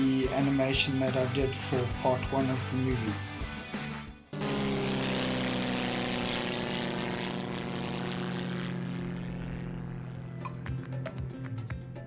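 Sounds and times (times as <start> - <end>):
propeller airplane engine drone: 0.0 - 12.0.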